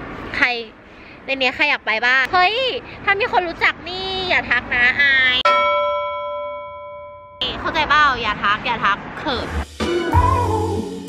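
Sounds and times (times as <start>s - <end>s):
bell-like chime: 5.5s - 7.4s.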